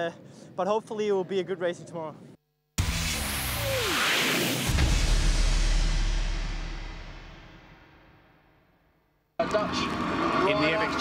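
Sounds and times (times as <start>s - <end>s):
whoosh with falling tone: 2.8s - 7.2s
deep low hit with rumble: 4.6s - 8.4s.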